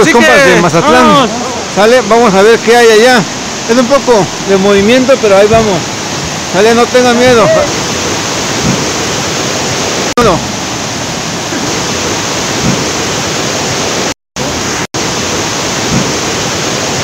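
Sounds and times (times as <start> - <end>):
waterfall rushing: 0.0 - 17.0
short voice: 7.3 - 7.7.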